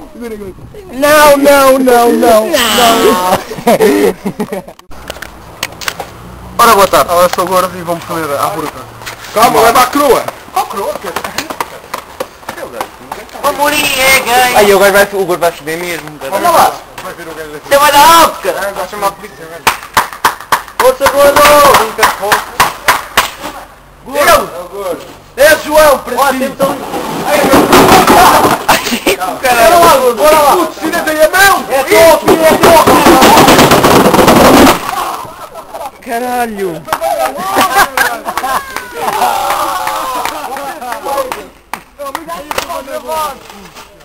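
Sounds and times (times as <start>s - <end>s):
board clattering down stairs: 27.2s - 29.0s, 31.8s - 35.0s
running footsteps on concrete steps: 31.6s - 35.0s.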